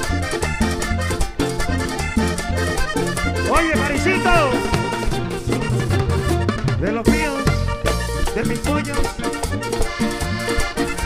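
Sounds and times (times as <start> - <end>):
bass line: 0.0 - 11.0
button accordion: 0.0 - 11.0
percussion: 0.0 - 11.0.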